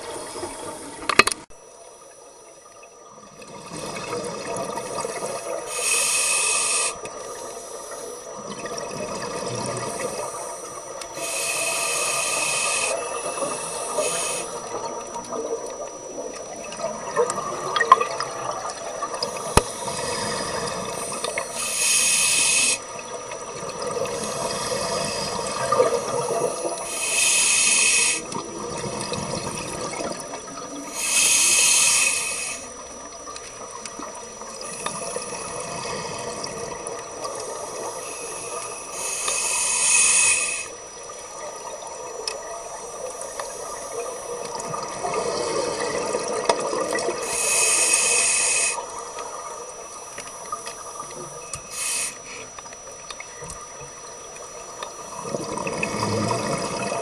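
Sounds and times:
exhaled bubbles bursting underwater: 0:03.2 - 0:05.6, 0:08.4 - 0:10.4, 0:13.2 - 0:21.5, 0:28.2 - 0:30.9, 0:43.9 - 0:47.3, 0:54.0 - 0:57.0
gurgling bubble noise: 0:03.3 - 0:05.4, 0:08.4 - 0:10.1, 0:28.3 - 0:30.7, 0:55.0 - 0:57.0.

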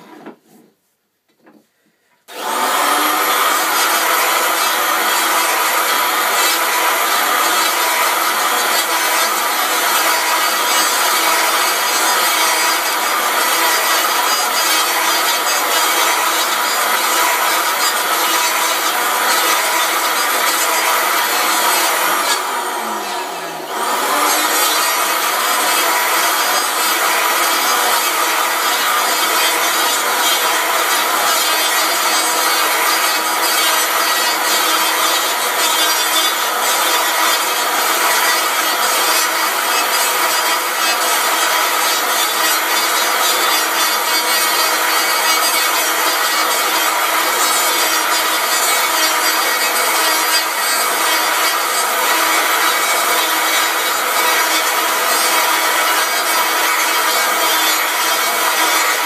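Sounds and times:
electric hand planer cutting wood: 0:02.3 - 0:59.0.

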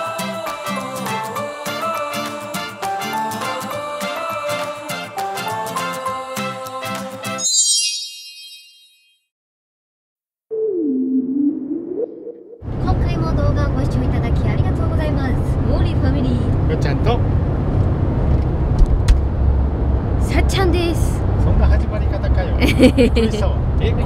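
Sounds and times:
chime sound effect: 0:07.4 - 0:09.2
van engine and road rumble: 0:12.7 - 0:24.0
people talking and laughing: 0:22.4 - 0:23.6.

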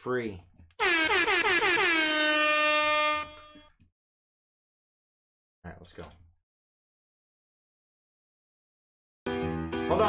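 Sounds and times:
air horn blast: 0:00.8 - 0:03.7.

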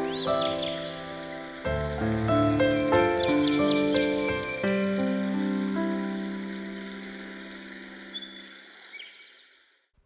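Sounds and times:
sustained piano chord: 0:00.0 - 0:08.4
faint bird chirps: 0:00.0 - 0:09.9.

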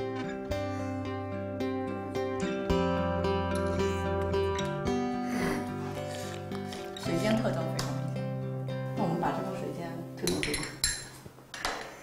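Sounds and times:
background music: 0:00.0 - 0:11.3
spoons clinking on porcelain cups: 0:10.2 - 0:12.0.

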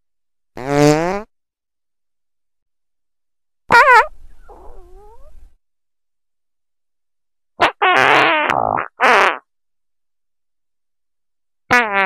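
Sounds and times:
fart sound effects: 0:00.6 - 0:01.3, 0:03.7 - 0:05.3, 0:07.6 - 0:09.5, 0:11.7 - 0:12.0.

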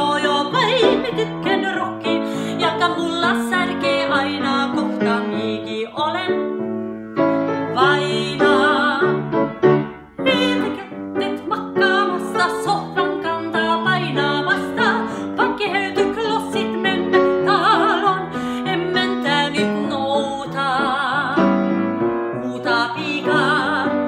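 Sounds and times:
woman singing operatically: 0:00.0 - 0:06.5, 0:07.7 - 0:09.2, 0:10.2 - 0:21.5, 0:22.3 - 0:24.0
piano accompaniment: 0:00.0 - 0:24.0.

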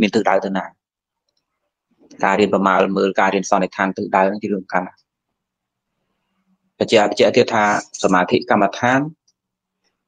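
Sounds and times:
man speaking: 0:00.0 - 0:00.8, 0:02.1 - 0:05.1, 0:06.8 - 0:09.2.

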